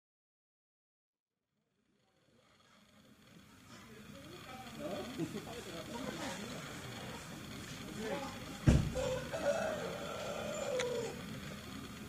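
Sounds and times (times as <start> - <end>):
people talking: 2.4 - 12.0.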